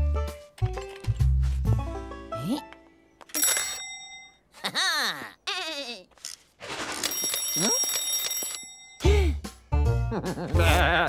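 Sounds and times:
cartoon alarm clock ringing: 3.3s - 4.6s, 7.0s - 9.2s.

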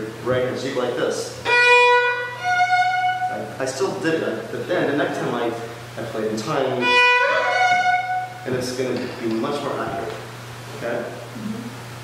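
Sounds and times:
viola bowed notes: 1.4s - 3.6s, 6.6s - 8.5s.

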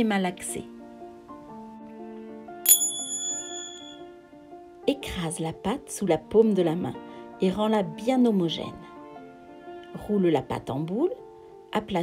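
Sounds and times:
soft background music: 0.0s - 12.0s
bright bell ding: 2.7s - 4.0s.

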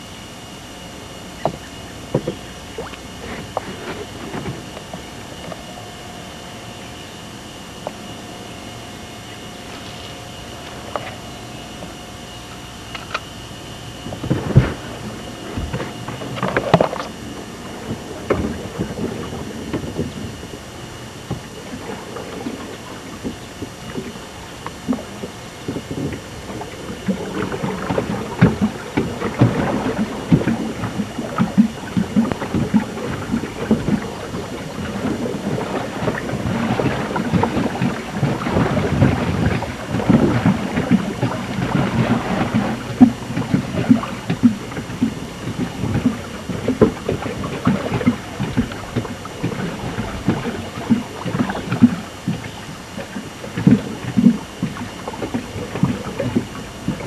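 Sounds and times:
water splashing and churning: 0.0s - 57.0s
wind rumble on microphone: 0.0s - 57.0s.

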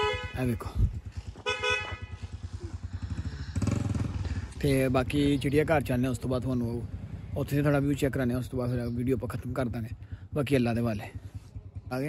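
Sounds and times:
small engine running: 2.0s - 4.6s.

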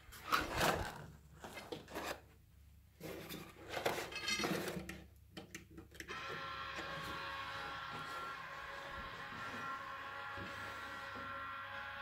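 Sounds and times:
drone of held tones: 6.1s - 12.0s.

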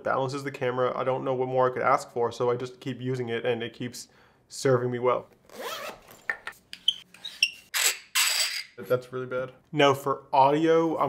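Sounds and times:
microphone sliding out of pouch: 5.5s - 6.2s.

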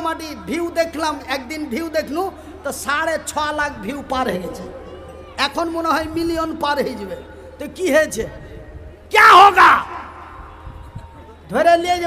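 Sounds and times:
man shouting into microphone: 9.1s - 10.6s.

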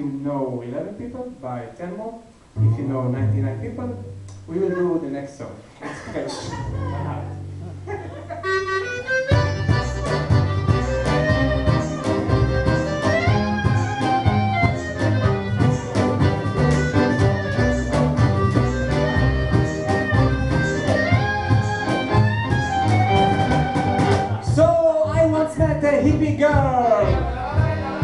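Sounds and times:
double bass: 2.4s - 4.8s, 6.4s - 28.0s
guitar: 2.5s - 5.1s, 5.9s - 28.0s
steady beat: 6.5s - 28.0s
accordion: 8.0s - 24.5s, 26.8s - 28.0s
fiddle: 8.3s - 24.4s.

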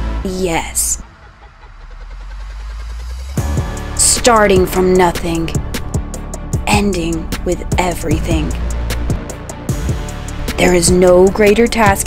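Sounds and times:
low rumble: 0.0s - 11.9s.

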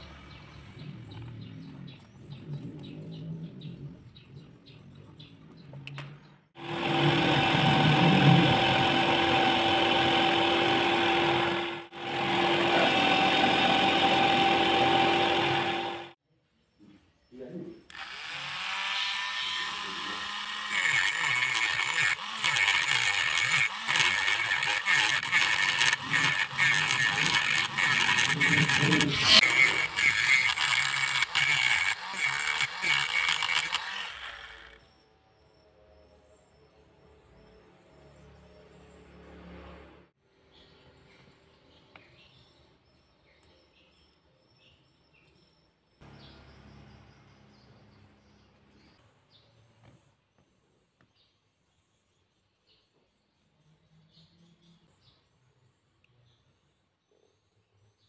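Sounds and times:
cutting disc grinding: 6.6s - 16.2s, 17.9s - 34.8s
rotary tool whine: 6.6s - 16.2s, 17.9s - 34.9s
small power-tool motor running: 6.6s - 16.2s, 17.9s - 35.0s.

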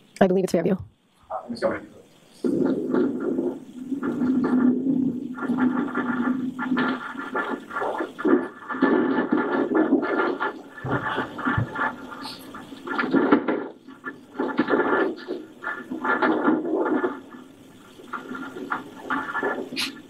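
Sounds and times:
muffled scratchy noise: 0.0s - 20.0s.

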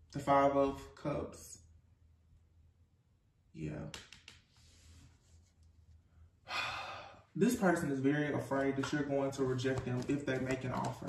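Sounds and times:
person sighing: 6.4s - 7.3s.

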